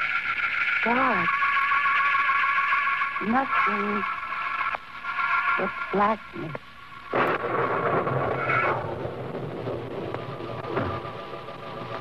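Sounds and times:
rumbling crash: 0:07.1 - 0:12.0.

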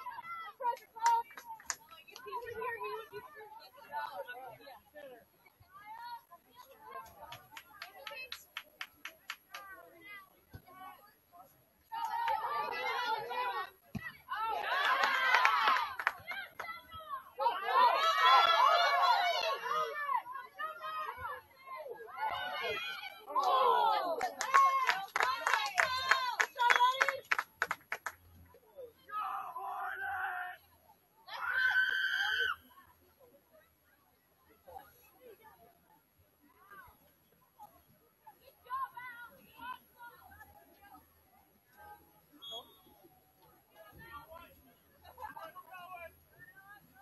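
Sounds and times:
people chattering: 0:00.0 - 0:47.0.

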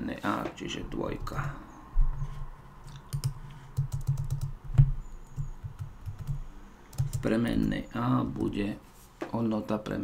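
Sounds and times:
computer keyboard typing: 0:02.8 - 0:07.7.

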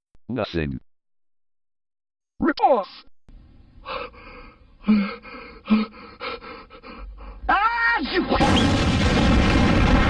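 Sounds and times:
breathy gasping intakes: 0:03.8 - 0:07.5.

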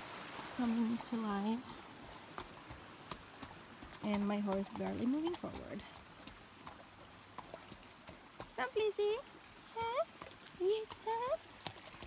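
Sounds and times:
horse hooves on wet gravel: 0:00.0 - 0:12.0.

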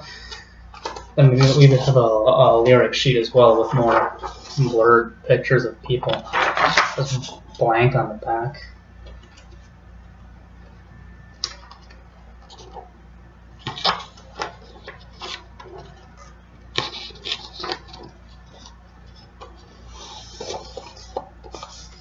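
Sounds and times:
low steady hum: 0:00.0 - 0:22.0
paper rustling: 0:00.2 - 0:02.0, 0:03.4 - 0:04.8, 0:06.0 - 0:07.5, 0:11.4 - 0:12.9, 0:13.6 - 0:22.0.

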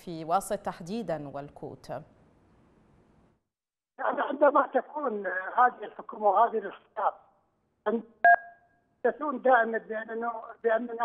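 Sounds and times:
two-tone telephone beep: 0:08.2 - 0:08.6.

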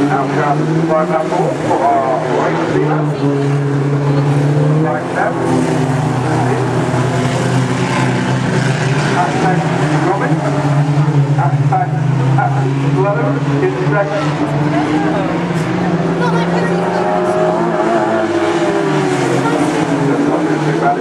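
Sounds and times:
race car engines droning: 0:00.0 - 0:21.0.

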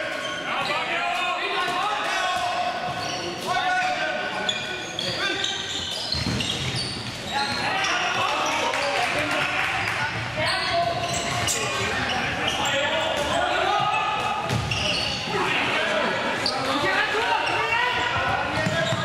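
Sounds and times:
shoes squeaking on floor: 0:00.0 - 0:00.9, 0:02.7 - 0:09.0, 0:09.8 - 0:15.5, 0:16.3 - 0:19.0
ball bouncing on court: 0:06.1 - 0:07.2, 0:13.0 - 0:15.0, 0:18.1 - 0:19.0.

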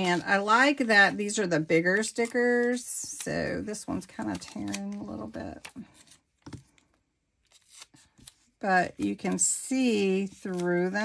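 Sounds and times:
sticker peeling paper rustle: 0:00.0 - 0:05.7, 0:07.5 - 0:11.0.

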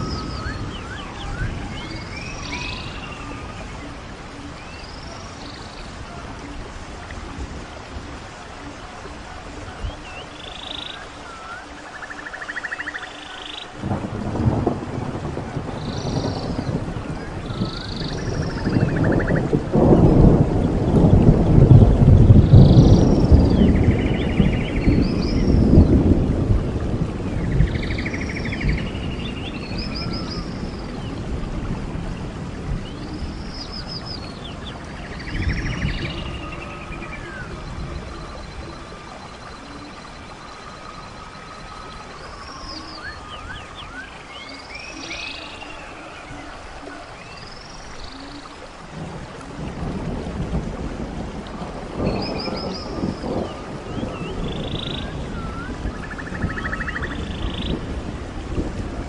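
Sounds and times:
birds whistling and trilling: 0:00.0 - 0:06.5, 0:09.6 - 0:13.8, 0:15.8 - 0:19.5, 0:27.4 - 0:31.2, 0:32.8 - 0:48.6, 0:52.0 - 0:57.9
rain hissing: 0:00.0 - 0:59.0
thunder rolling: 0:13.8 - 0:44.0, 0:49.0 - 0:59.0.

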